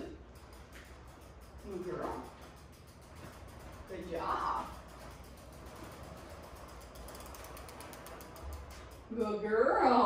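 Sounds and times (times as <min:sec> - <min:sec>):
bicycle freewheel ticking: 0:00.0 - 0:10.0.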